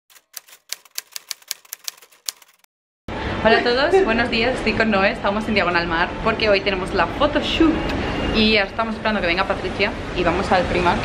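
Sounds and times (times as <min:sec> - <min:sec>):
typewriter key clacks: 0:00.1 - 0:02.6.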